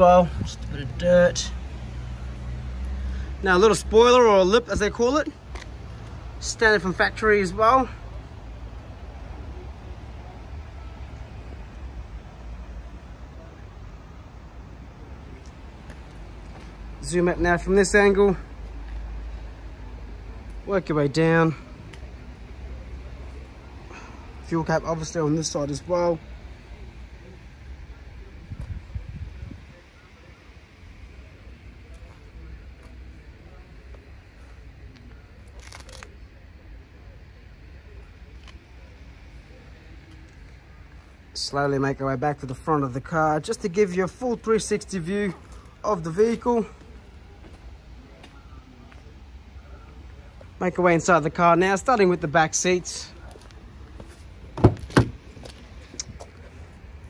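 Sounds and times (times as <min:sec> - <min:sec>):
low rumble of outdoor noise: 0:00.0 - 0:57.0.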